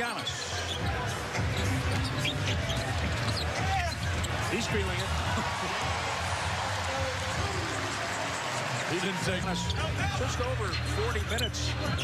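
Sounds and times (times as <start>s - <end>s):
sneakers squeaking: 0.0s - 5.4s.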